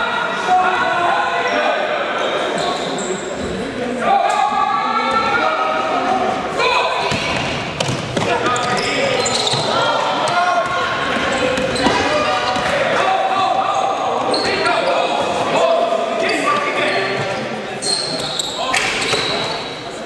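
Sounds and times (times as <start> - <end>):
players calling out: 0.0 - 20.0.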